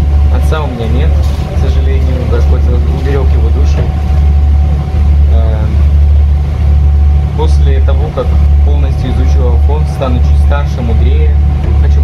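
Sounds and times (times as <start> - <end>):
faint steady hum: 0.0 - 12.0
ferry engine drone: 0.0 - 12.0.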